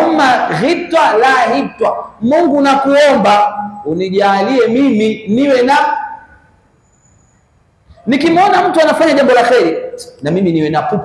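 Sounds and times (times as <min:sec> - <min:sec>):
man speaking: 0:00.0 - 0:06.3, 0:08.0 - 0:11.0.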